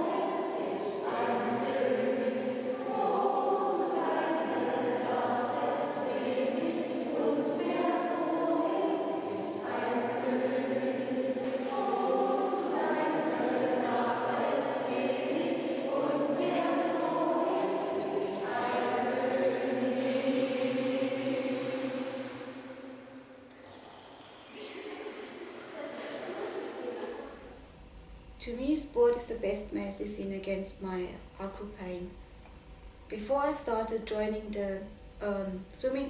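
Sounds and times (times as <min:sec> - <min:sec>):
choir singing held notes: 0:00.0 - 0:23.8.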